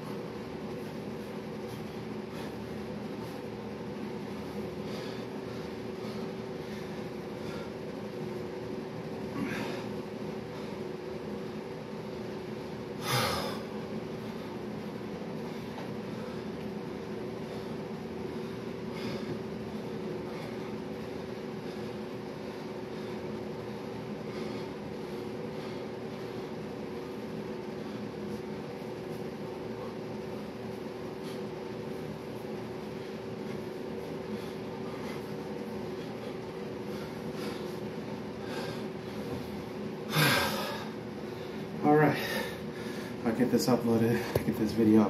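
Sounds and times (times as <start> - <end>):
ventilation humming drone: 0.0 - 45.0.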